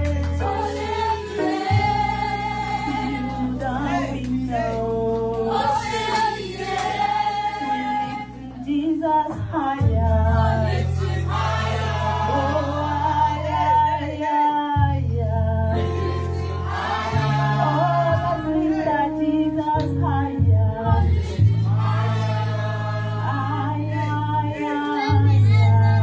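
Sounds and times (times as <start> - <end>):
low accompaniment chords: 0.0 - 14.2, 14.8 - 26.0
other voices singing: 0.0 - 14.4, 15.7 - 20.0, 20.6 - 26.0
woman singing into a microphone: 2.9 - 5.6, 7.6 - 11.0, 12.3 - 16.0, 17.6 - 21.4, 23.3 - 26.0.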